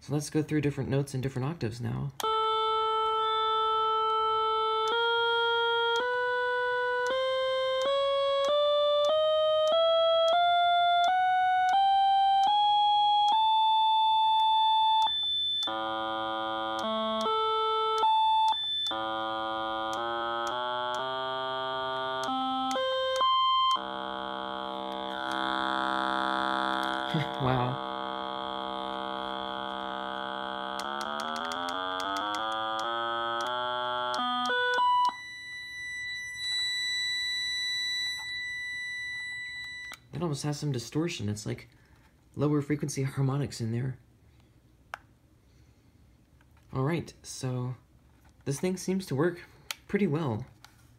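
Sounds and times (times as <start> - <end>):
electronic tuner reference tones: 2.2 - 40.2
thin high tone: 18.0 - 40.0.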